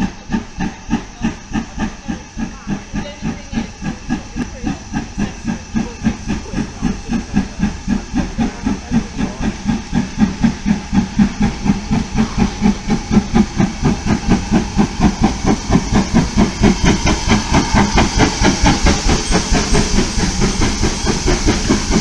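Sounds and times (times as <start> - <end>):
steam hissing: 0.0 - 22.0
steam locomotive exhaust beats: 0.0 - 22.0.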